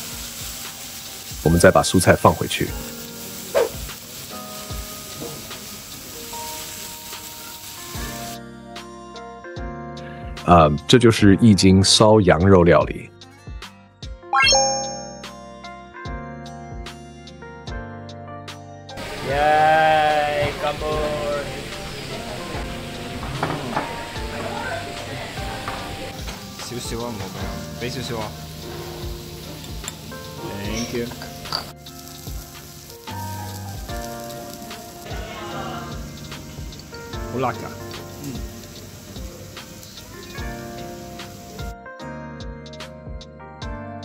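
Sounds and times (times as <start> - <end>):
meat sizzling on a grill: 0.0 - 8.4, 19.0 - 41.8
background voices: 19.0 - 26.2.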